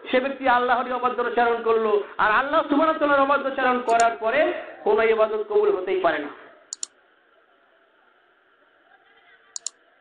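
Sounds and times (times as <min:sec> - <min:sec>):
sharp double click: 0:03.9 - 0:04.1, 0:06.7 - 0:06.9, 0:09.6 - 0:09.8.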